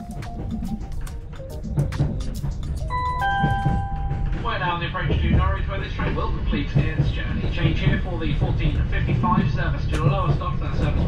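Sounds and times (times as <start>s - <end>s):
train rumbling: 0.0s - 11.0s
two-note electronic chime: 2.9s - 4.3s.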